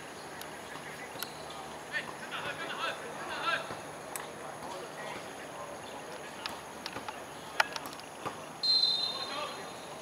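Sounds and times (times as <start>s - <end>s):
referee's whistle blast: 8.6s - 9.6s.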